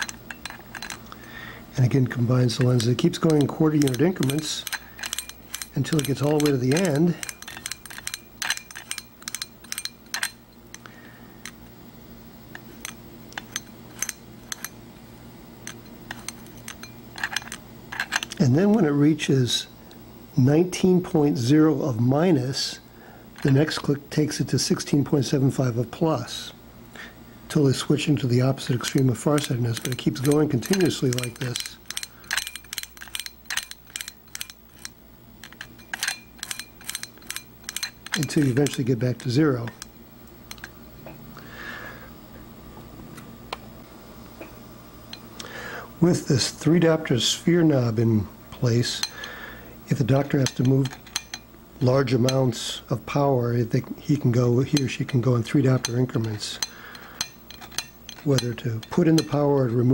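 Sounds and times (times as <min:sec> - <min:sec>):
faint steady hum: 0:00.0 - 0:59.9.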